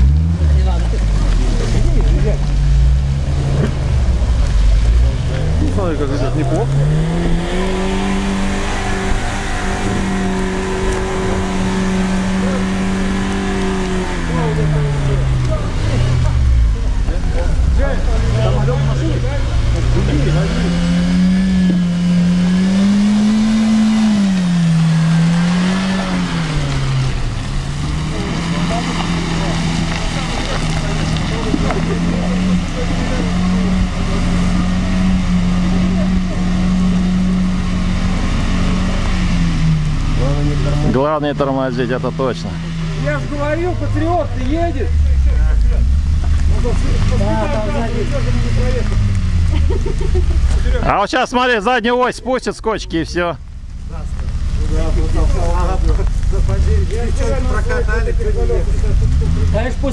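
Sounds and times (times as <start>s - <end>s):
engine revving in mud: 0.0s - 59.9s.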